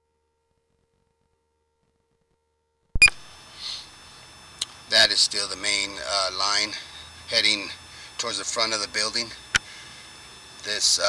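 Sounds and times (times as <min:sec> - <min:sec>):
faint electronic whine: 0:00.0 - 0:11.0.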